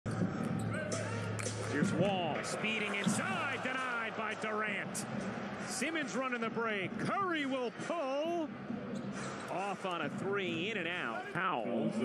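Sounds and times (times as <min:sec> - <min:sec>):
arena crowd noise: 0:00.1 - 0:12.0.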